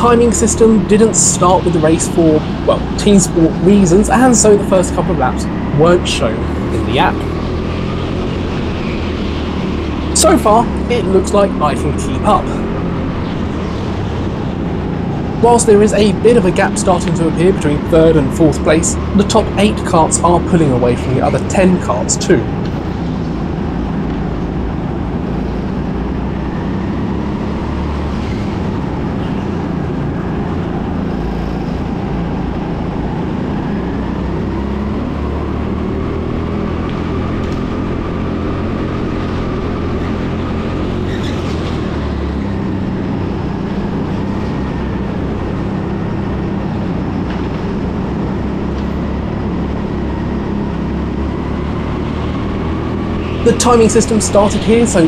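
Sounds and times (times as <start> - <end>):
go-kart engine running: 0.0 - 55.0.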